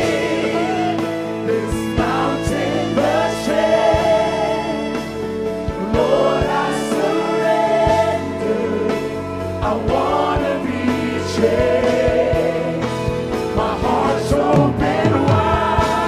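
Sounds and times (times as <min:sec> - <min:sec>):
band with guitars and beat: 0:00.0 - 0:16.0
choir singing: 0:00.0 - 0:16.0.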